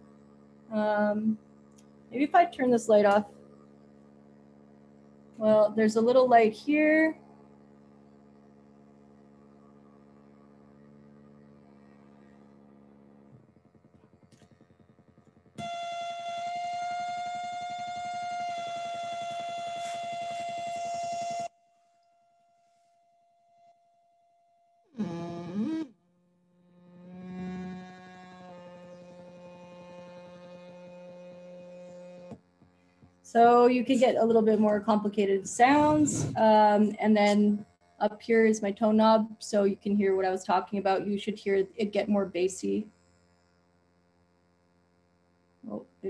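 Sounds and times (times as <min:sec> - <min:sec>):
buzzy synthesizer drone: 0:00.0 - 0:21.5, 0:25.0 - 0:25.9, 0:26.6 - 0:46.0.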